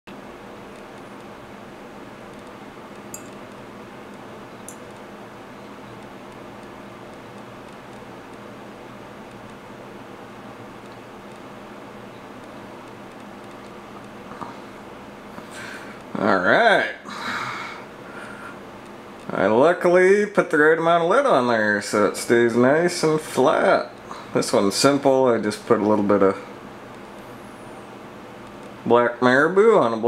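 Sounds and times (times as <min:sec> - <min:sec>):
mechanical room hum: 0:00.1 - 0:30.0
light clicks: 0:10.8 - 0:11.5.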